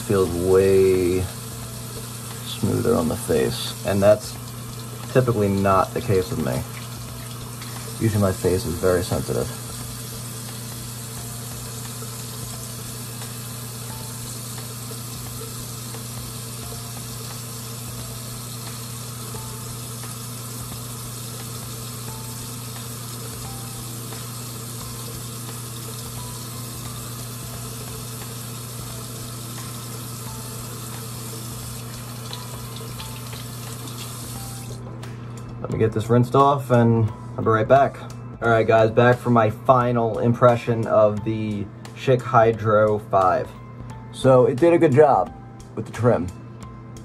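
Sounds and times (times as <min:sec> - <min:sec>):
water running from tap: 0:00.0 - 0:34.9.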